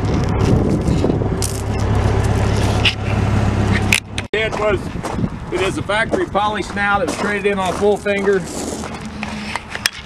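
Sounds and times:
wind on microphone: 0.0 - 3.3, 4.4 - 7.1
engine running: 0.0 - 10.0.

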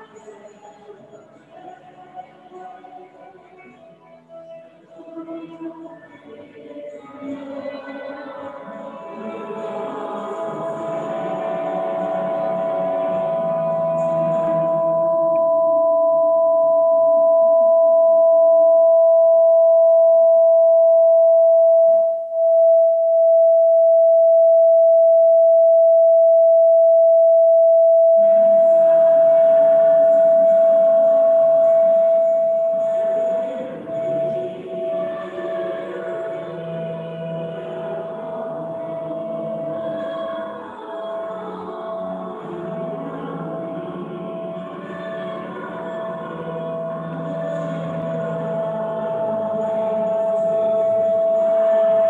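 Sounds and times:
quiet music: 0.0 - 16.7, 28.2 - 52.0
steady high tone: 9.1 - 52.0.

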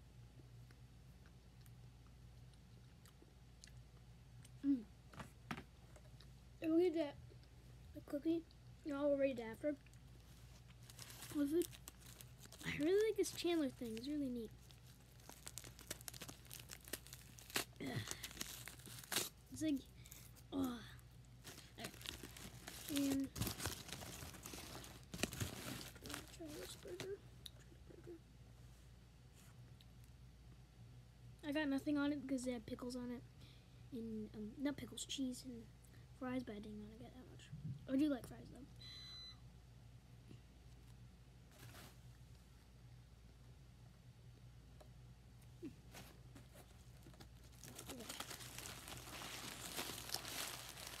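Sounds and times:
faint room hum: 0.0 - 51.0
foil wrapper crinkling: 10.6 - 20.6, 21.4 - 27.2, 45.9 - 51.0
short high beep: 38.8 - 39.4.

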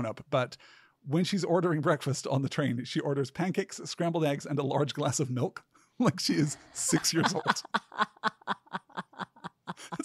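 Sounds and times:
laughter in quick bursts: 6.8 - 10.0.

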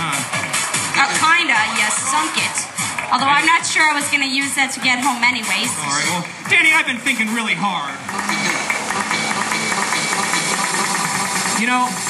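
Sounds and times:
motorboat engine running: 8.0 - 12.0.

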